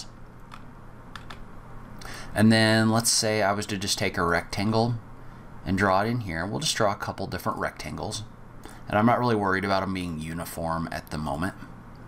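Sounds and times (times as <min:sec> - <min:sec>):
low steady hum: 0:00.0 - 0:12.0
soft computer clicks: 0:00.4 - 0:01.4.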